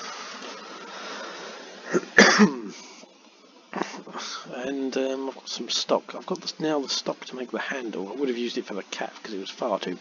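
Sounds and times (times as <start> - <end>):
steady hiss: 0.0 - 10.0
man coughing: 1.9 - 2.8.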